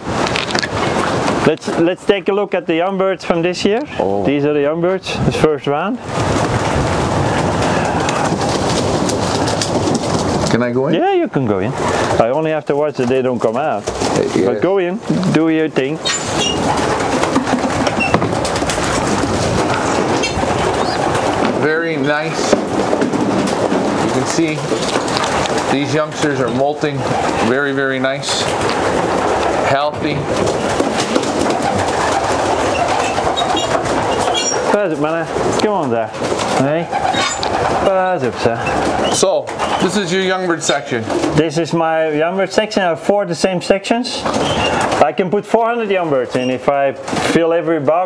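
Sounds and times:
pigeon wings flapping: 0.0 - 1.8, 6.0 - 11.0, 11.8 - 42.9, 44.1 - 48.0
steady rushing noise: 0.0 - 48.0
pigeons cooing: 6.0 - 11.0, 11.6 - 12.2, 13.8 - 41.7, 44.2 - 45.0.

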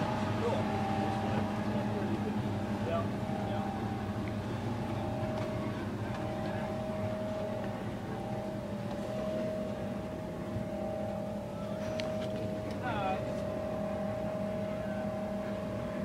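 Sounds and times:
aircraft cabin machine hum: 0.0 - 16.0
constant whining tones: 0.0 - 16.0.

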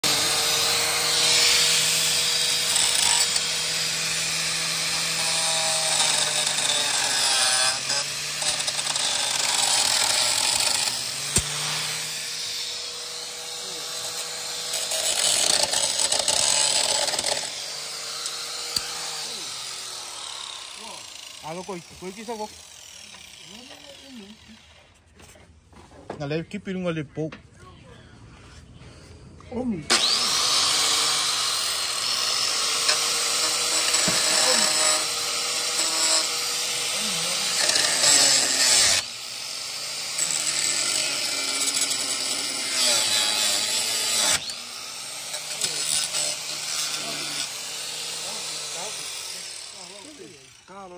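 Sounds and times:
angle grinder cutting metal: 0.0 - 24.9, 29.8 - 50.9.

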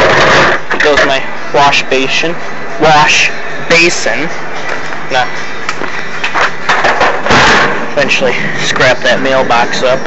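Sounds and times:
airy background noise: 0.0 - 10.0.

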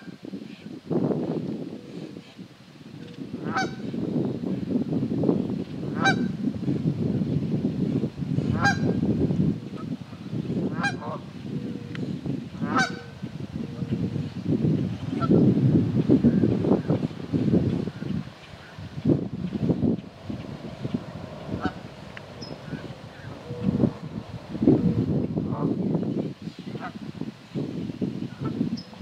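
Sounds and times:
geese honking: 3.4 - 3.8, 8.5 - 8.9, 12.6 - 13.1, 21.5 - 23.8.

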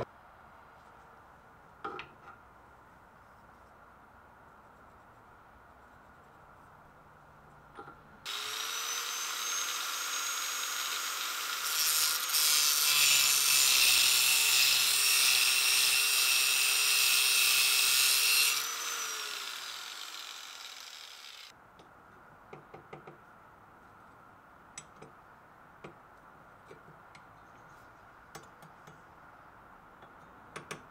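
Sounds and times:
grinder cutting metal bolt: 8.3 - 21.5.

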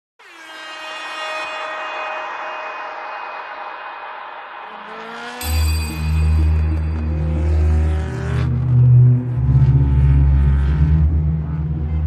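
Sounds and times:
long held chord: 0.5 - 8.8.

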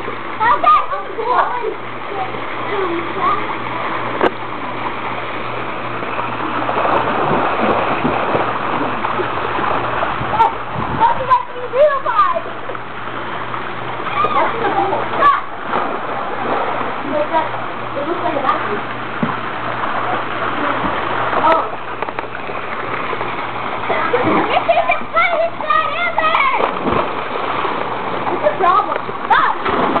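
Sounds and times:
water splashing in pool: 0.0 - 30.0
children calling out: 14.0 - 15.6, 23.8 - 26.7.

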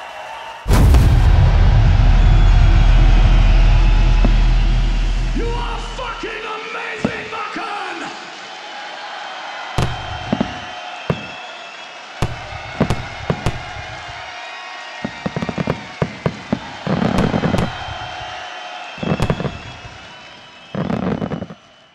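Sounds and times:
crackling fireworks pops: 0.7 - 5.1, 15.0 - 18.3, 19.0 - 21.8
fireworks bursting: 0.7 - 6.4, 12.2 - 14.3, 15.0 - 21.8.

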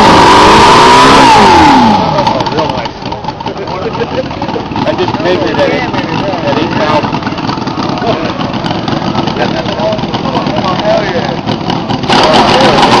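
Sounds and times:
model engine running: 0.0 - 13.0
voices: 1.8 - 13.0.

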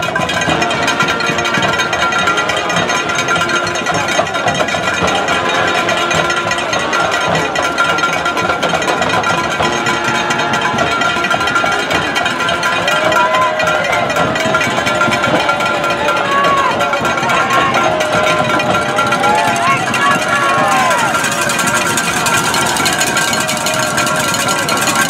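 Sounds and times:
brass sustained notes: 0.0 - 25.0
crowd voices: 0.0 - 25.0
fast dense drumming: 0.0 - 25.0.

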